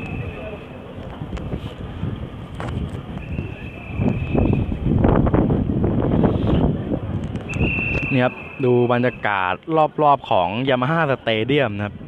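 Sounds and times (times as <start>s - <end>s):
wind buffeting microphone: 0.0s - 8.2s.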